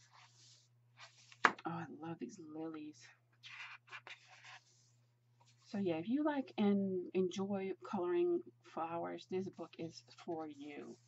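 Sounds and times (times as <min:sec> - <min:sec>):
book pages turning: 0:00.0 - 0:01.6, 0:03.4 - 0:05.7.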